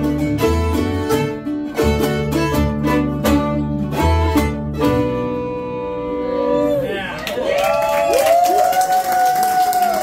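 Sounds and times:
audience clapping and cheering: 7.0s - 10.0s.

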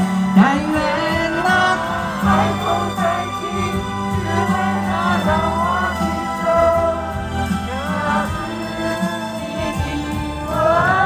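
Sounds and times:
band accompaniment: 0.0s - 11.0s
woman singing with vibrato: 0.4s - 11.0s.

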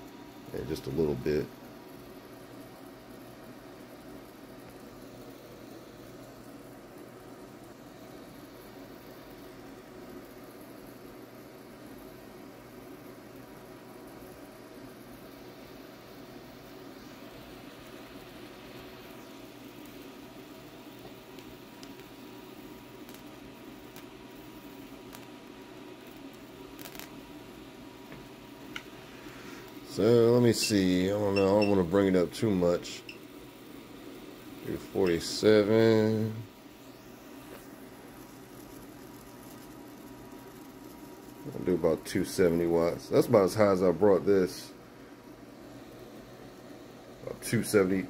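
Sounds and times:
tesla coil hiss and hum: 0.0s - 48.0s.

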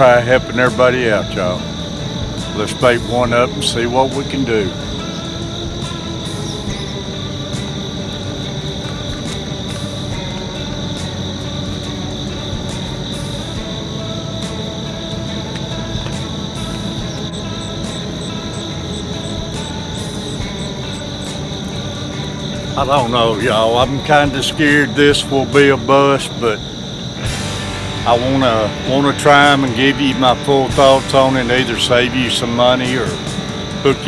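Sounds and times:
high insect chorus: 0.0s - 34.0s
music of long held notes: 0.0s - 34.0s.

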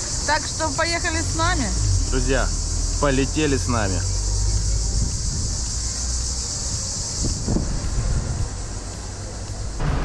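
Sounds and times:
cicadas chorus: 0.0s - 10.0s
street traffic: 0.0s - 10.0s
wind on microphone: 4.7s - 5.9s, 6.7s - 8.7s.

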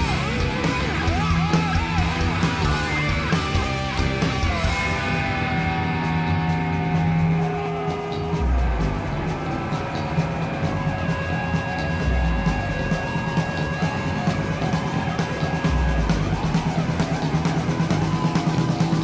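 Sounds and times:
distorted electric guitar: 0.0s - 19.0s
drum kit: 0.0s - 19.0s.

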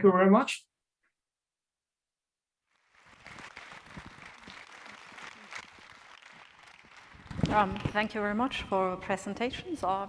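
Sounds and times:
audience applause: 2.7s - 8.3s.

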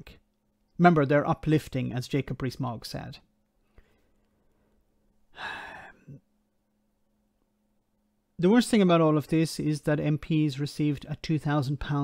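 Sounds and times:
man sighing: 5.3s - 6.2s.

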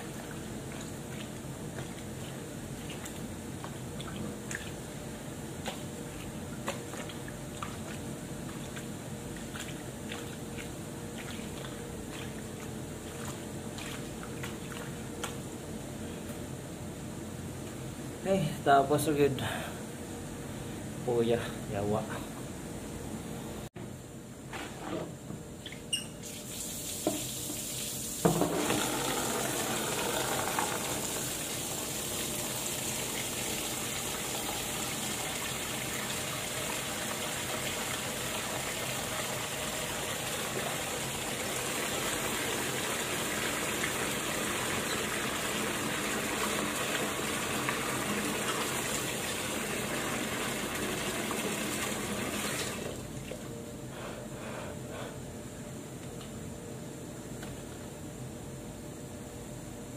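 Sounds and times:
water running from a tap: 26.2s - 53.0s.

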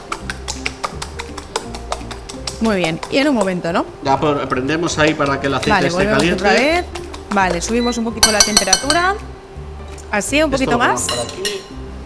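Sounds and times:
fork beating eggs in a bowl: 0.0s - 3.8s, 5.0s - 9.1s
background music with bass line: 0.0s - 12.0s.

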